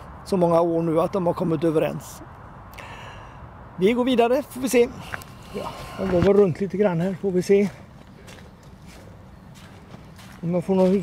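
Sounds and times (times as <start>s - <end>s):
footsteps on gravel and leaves: 5.0s - 11.0s.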